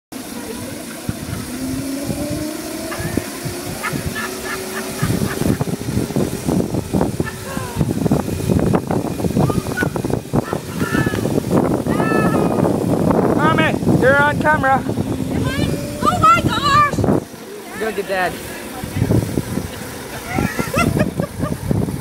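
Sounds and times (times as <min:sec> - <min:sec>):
rattling rushing noise: 0:00.2 - 0:22.0
small electric motors whining: 0:00.2 - 0:22.0
indistinct voices: 0:09.4 - 0:20.6.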